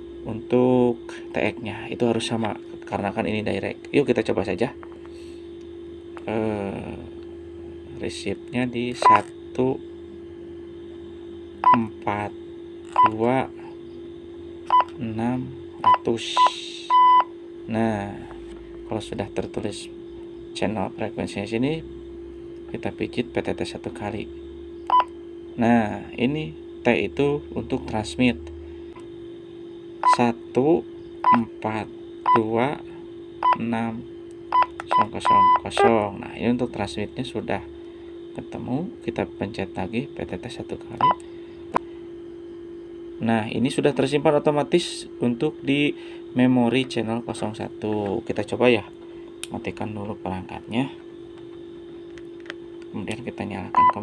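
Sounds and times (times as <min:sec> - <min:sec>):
steady low hum: 0:00.0 - 0:54.0
radio keypad beeps: 0:09.0 - 0:09.3, 0:11.6 - 0:11.9, 0:12.9 - 0:13.2, 0:14.7 - 0:14.9, 0:15.8 - 0:17.3, 0:30.0 - 0:30.2, 0:31.2 - 0:31.5, 0:32.2 - 0:32.5, 0:33.4 - 0:33.6, 0:34.5 - 0:36.0, 0:41.0 - 0:41.2, 0:53.7 - 0:54.0
short electronic beep: 0:09.0 - 0:09.3, 0:53.8 - 0:54.0.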